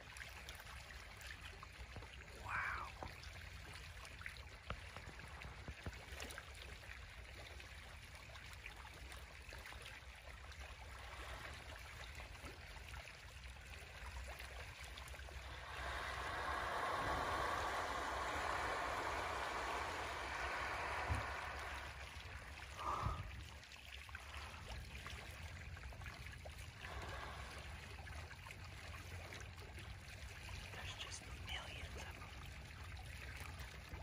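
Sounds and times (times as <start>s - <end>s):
rush of water: 0.0s - 34.0s
water lapping against boat: 0.0s - 34.0s.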